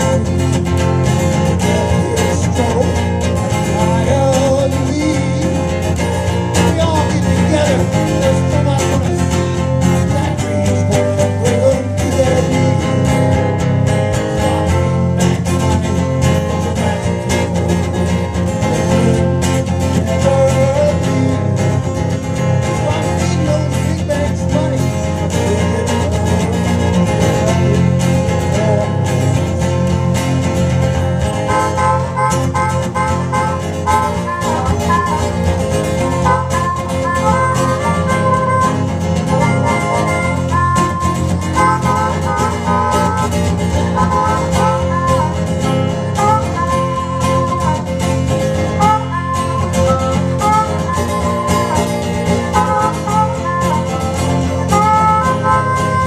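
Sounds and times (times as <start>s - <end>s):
man singing: 0.0s - 13.5s, 15.2s - 29.8s, 31.4s - 47.9s
harmonica playing: 0.0s - 30.0s, 30.6s - 56.0s
blues guitar: 0.0s - 56.0s.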